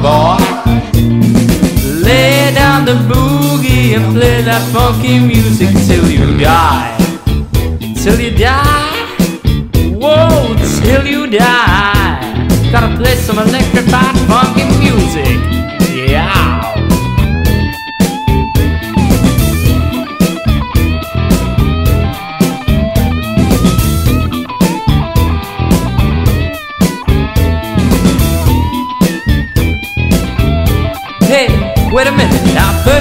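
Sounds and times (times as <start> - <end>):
bass guitar: 0.0 - 33.0
electric guitar lead bending notes: 0.0 - 33.0
steady drum beat: 0.0 - 33.0.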